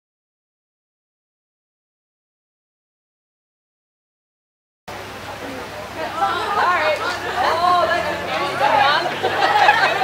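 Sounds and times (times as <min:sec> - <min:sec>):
people chattering: 0:04.9 - 0:10.0.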